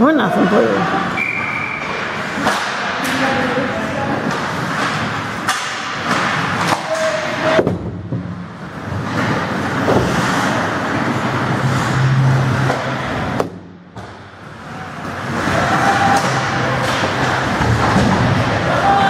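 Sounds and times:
hockey sticks and puck clacking: 1.1 - 19.0
skate blades scraping ice: 8.7 - 13.3.

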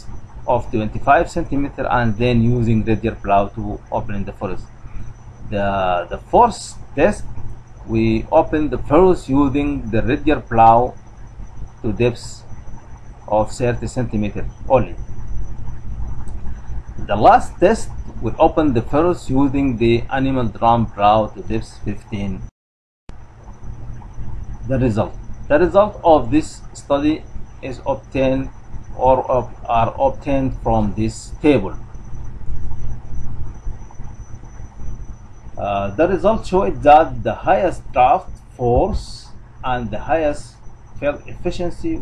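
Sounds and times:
low rumble and hum: 0.0 - 22.5, 23.1 - 42.0.

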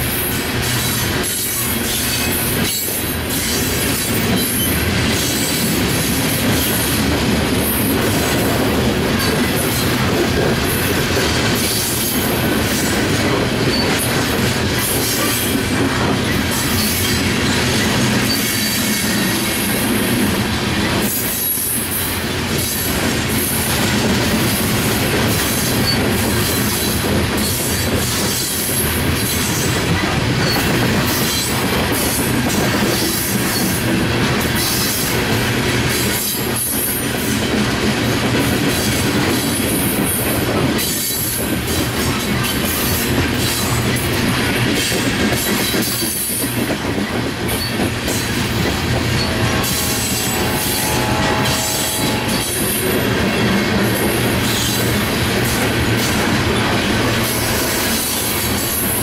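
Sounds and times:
freight train wheels rumbling on rails: 0.0 - 59.0.

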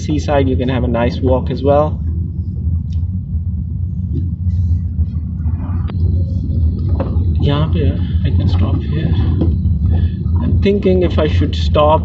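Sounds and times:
car interior engine and tyre noise: 0.0 - 12.0.

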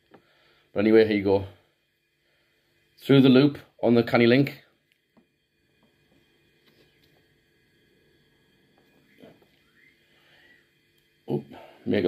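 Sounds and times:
parrot whistling: 8.9 - 10.6.

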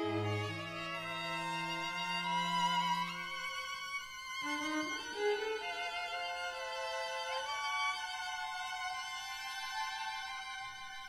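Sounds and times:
violins bowing sustained notes: 0.0 - 11.0.

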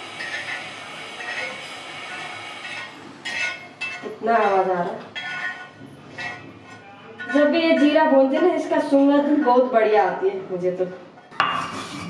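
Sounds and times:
steel spoon scraping seeds on griddle: 0.2 - 7.9.

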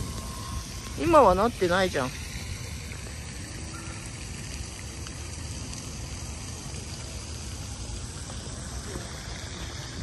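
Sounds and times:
even hiss: 0.0 - 10.0.

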